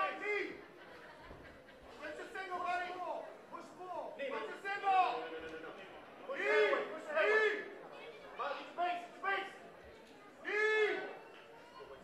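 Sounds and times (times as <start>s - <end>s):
low crowd noise: 0.0s - 12.0s.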